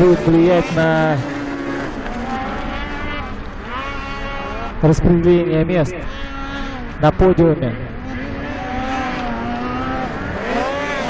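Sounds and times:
snowmobile engines revving: 0.0s - 11.0s.

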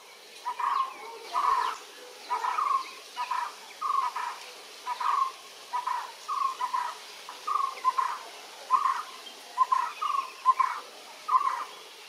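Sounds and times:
bird calling: 0.0s - 11.8s.

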